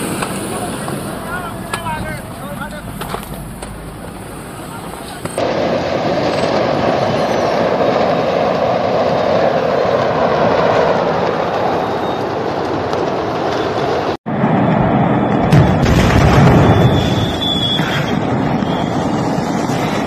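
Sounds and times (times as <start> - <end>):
fireworks crackling: 0.0 - 20.0.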